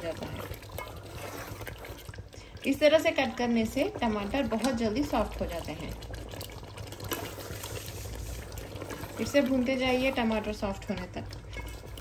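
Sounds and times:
food sizzling and bubbling: 0:00.0 - 0:12.0
small crackles: 0:03.2 - 0:12.0.

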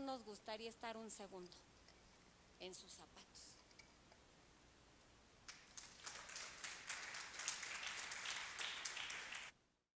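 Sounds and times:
applause: 0:05.5 - 0:09.6.

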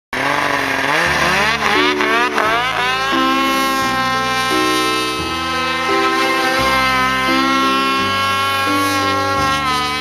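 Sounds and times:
snowmobile engine revving: 0:00.1 - 0:10.0
music: 0:01.8 - 0:10.0.

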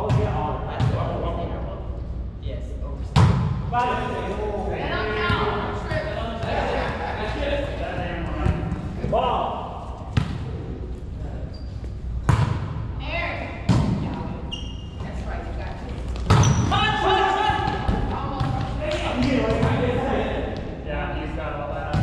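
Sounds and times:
volleyball smacks echoing in gym: 0:03.1 - 0:03.8, 0:10.1 - 0:10.5, 0:12.2 - 0:13.0, 0:13.6 - 0:14.3, 0:16.0 - 0:19.9.

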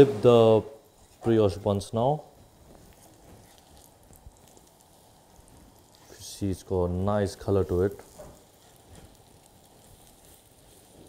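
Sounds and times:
food sizzling in a pan: 0:00.0 - 0:11.0
small crackles: 0:00.8 - 0:11.0.

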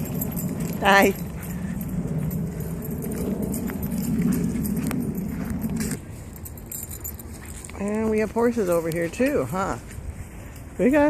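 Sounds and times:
light metallic jingle: 0:00.0 - 0:11.0.

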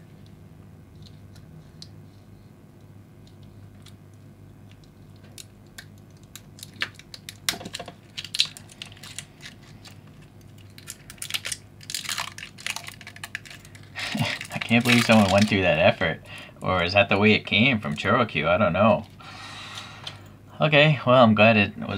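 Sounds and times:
plastic film crinkling and tearing: 0:05.2 - 0:16.0.

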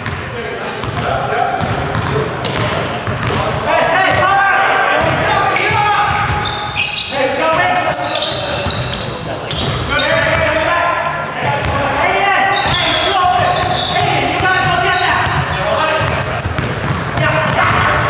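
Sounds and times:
players' voices: 0:00.0 - 0:18.0
basketball bouncing on hardwood floor: 0:01.6 - 0:03.4, 0:12.6 - 0:17.9.

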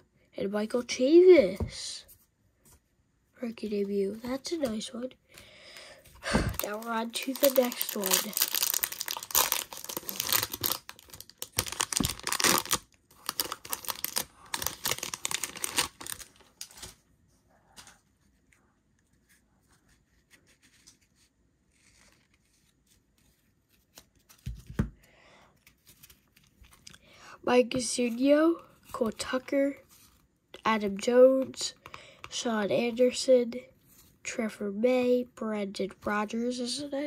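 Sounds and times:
foil wrapper ripping and crinkling: 0:06.5 - 0:17.0.

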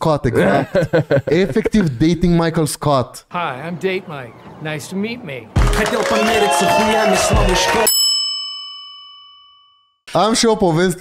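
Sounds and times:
bell-like ding: 0:07.8 - 0:10.0.

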